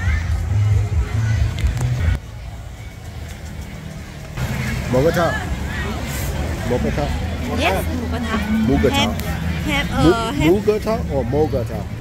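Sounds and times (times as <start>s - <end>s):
bass-heavy music: 0.0s - 12.0s
road traffic rumble: 0.0s - 12.0s.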